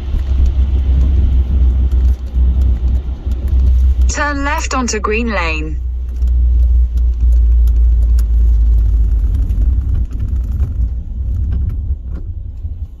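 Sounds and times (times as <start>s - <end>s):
car driving on wet road: 0.0s - 13.0s.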